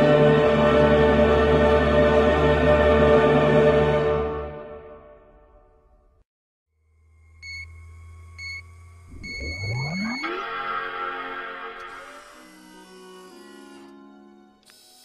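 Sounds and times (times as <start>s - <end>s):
electronic beeps: 8.4s - 10.8s
rising whir: 8.4s - 13.0s
startup chime: 9.1s - 11.0s.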